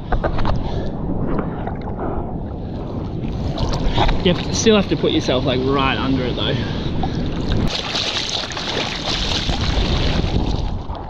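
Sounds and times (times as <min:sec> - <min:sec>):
water splashing and rushing: 0:02.8 - 0:11.0.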